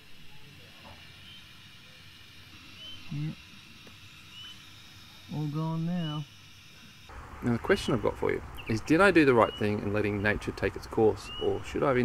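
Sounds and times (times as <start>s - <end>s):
faint high chirps: 0.0s - 7.1s.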